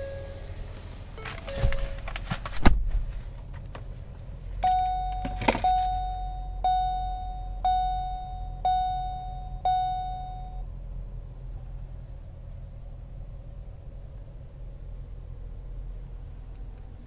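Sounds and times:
dashboard warning chime dings: 0.0s - 0.5s, 1.2s - 2.1s, 4.6s - 10.6s
car engine idling: 3.1s - 17.0s.

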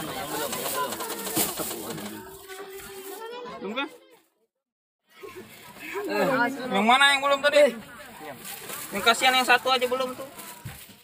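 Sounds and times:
plastic bag crinkling: 0.0s - 3.4s, 8.2s - 11.0s
children chattering: 0.0s - 11.0s.

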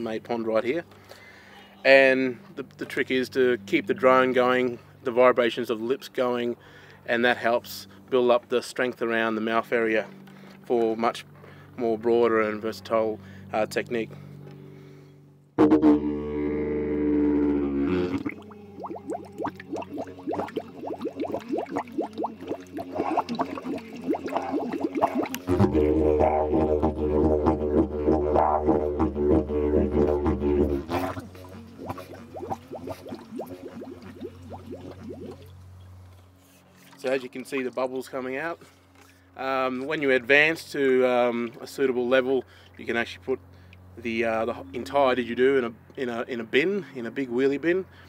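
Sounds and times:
didgeridoo drone: 15.6s - 35.7s
water bubbling: 17.0s - 35.6s.

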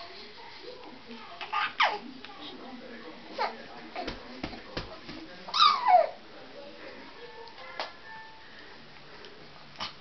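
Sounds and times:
baby squealing: 5.5s - 6.2s.

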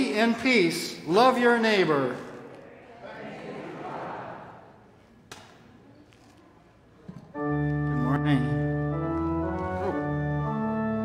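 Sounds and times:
murmur in a large hall: 0.0s - 11.0s.

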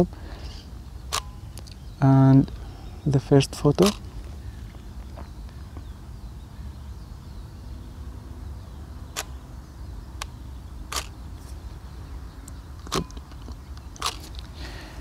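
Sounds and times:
camera shutter clicks: 1.1s - 1.3s, 3.8s - 4.1s, 9.1s - 9.4s, 10.2s - 11.2s, 12.8s - 14.4s.

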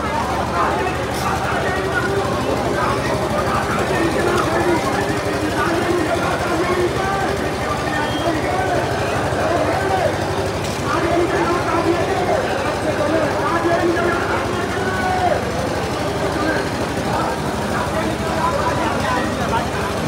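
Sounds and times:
crowd of men shouting: 0.0s - 19.4s.

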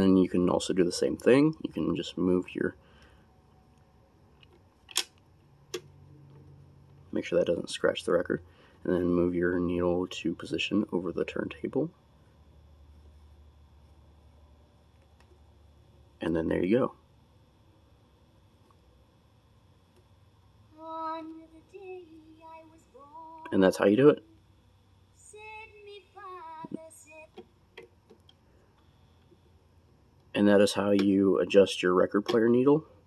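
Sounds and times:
faint low hum: 0.0s - 33.0s
quiet music from a turntable: 3.4s - 33.0s
stylus click on record: 32.2s - 32.6s.

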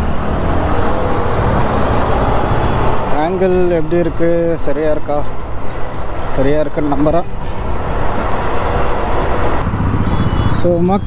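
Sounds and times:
motorcycle engine: 0.0s - 11.0s
road noise: 0.0s - 11.0s.

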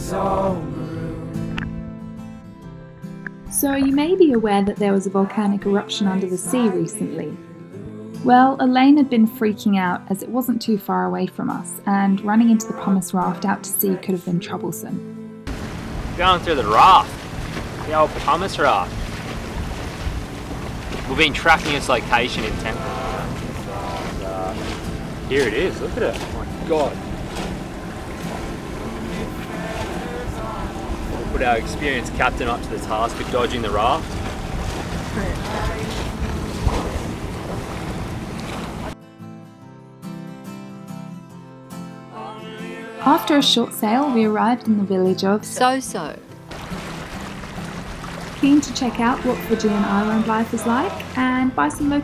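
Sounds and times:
sea noise: 0.0s - 1.5s, 15.5s - 39.0s, 46.2s - 52.0s
quiet background music: 3.2s - 19.3s, 21.1s - 37.0s, 42.1s - 52.0s
water rushing past hull: 15.5s - 39.0s, 46.4s - 52.0s
wind buffeting microphone: 15.5s - 39.0s.

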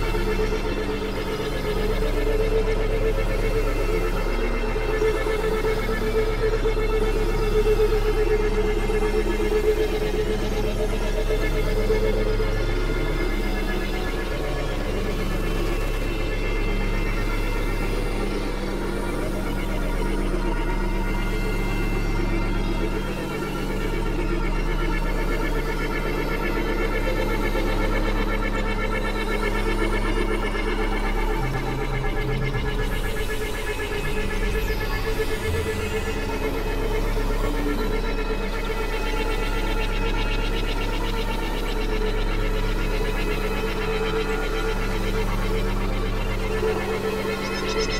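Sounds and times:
deep bass drone: 0.0s - 47.9s
synthesizer drone music: 0.0s - 47.9s.

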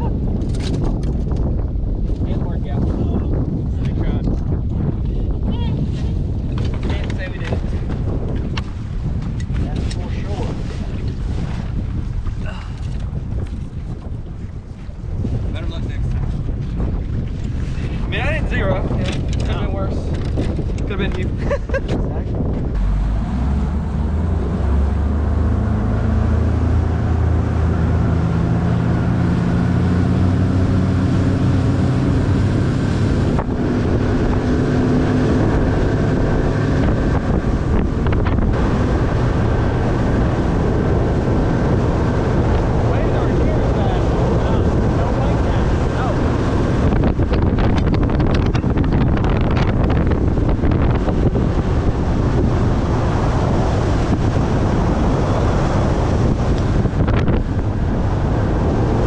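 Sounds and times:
hull and water noise: 0.0s - 59.0s
outboard motor running: 0.0s - 59.0s
wind buffeting microphone: 0.0s - 59.0s.

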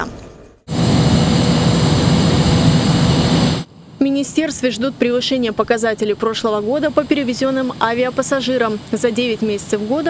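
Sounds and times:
high steady whine: 0.0s - 10.0s
jet engine roar: 0.0s - 10.0s.

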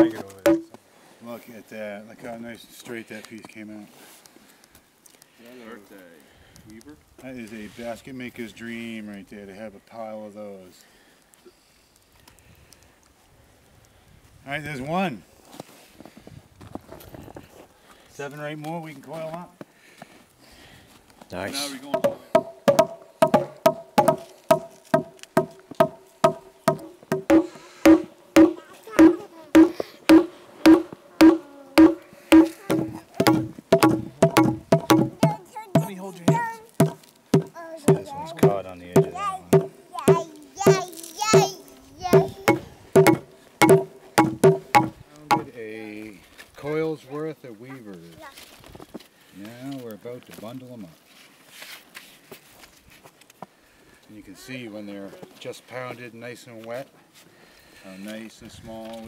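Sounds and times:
blows pounding a log: 0.0s - 0.8s, 21.8s - 45.5s.

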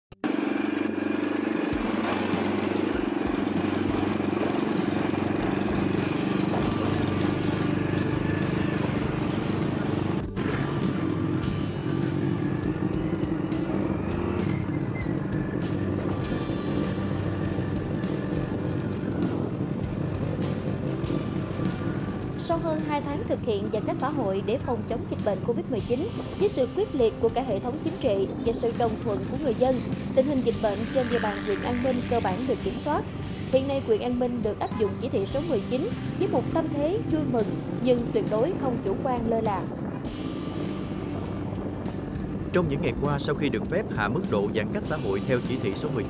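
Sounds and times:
motorbike engine running: 0.1s - 46.0s
road noise: 0.2s - 46.0s.

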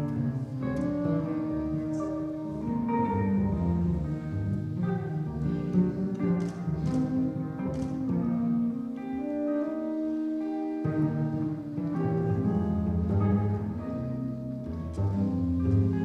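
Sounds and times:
double bass line: 0.0s - 16.0s
jazz trio playing live: 0.0s - 16.0s.

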